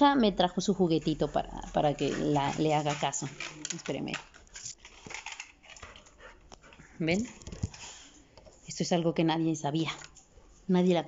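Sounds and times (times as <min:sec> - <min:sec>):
dog sounds: 0:00.9 - 0:03.6.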